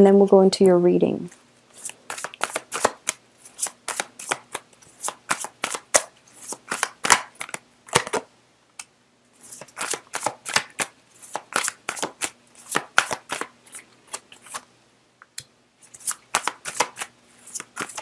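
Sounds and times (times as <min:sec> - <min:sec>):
cards being shuffled by hand: 0:01.3 - 0:08.3, 0:09.4 - 0:14.7, 0:15.8 - 0:18.0.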